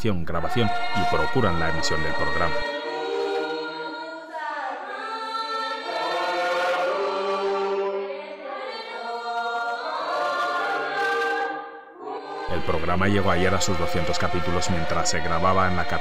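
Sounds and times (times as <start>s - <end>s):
choir singing a hymn: 0.3s - 16.0s.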